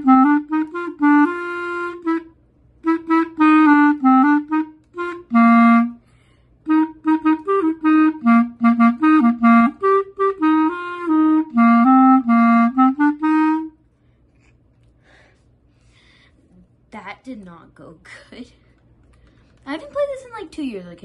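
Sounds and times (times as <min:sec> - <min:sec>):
clarinet playing short notes: 0:00.0 - 0:06.0, 0:06.7 - 0:13.8.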